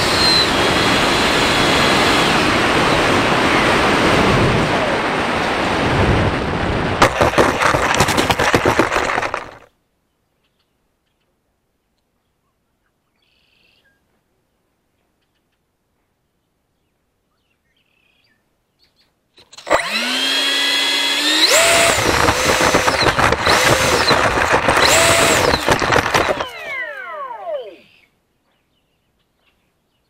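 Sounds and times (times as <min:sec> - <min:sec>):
electric fan whine: 0:00.0 - 0:09.2, 0:19.7 - 0:28.0.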